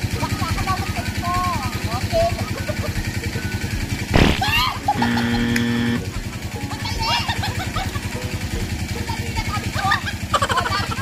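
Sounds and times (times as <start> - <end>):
engine putter: 0.0 - 11.0
flat held tone: 4.2 - 6.0
people shrieking: 4.4 - 4.9.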